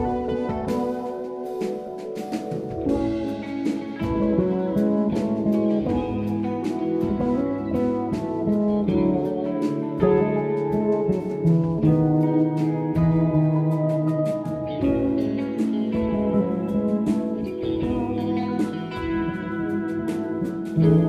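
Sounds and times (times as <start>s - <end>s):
bass: 0.0s - 21.0s
drums with cymbal strikes: 0.0s - 21.0s
electric guitar: 0.0s - 21.0s
keyboards: 0.0s - 21.0s.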